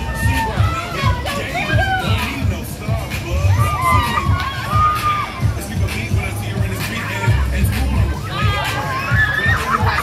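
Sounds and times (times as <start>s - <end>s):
riders screaming and shouting: 0.0s - 2.5s, 3.3s - 5.8s, 8.1s - 10.0s
dance music with steady beat: 0.0s - 10.0s.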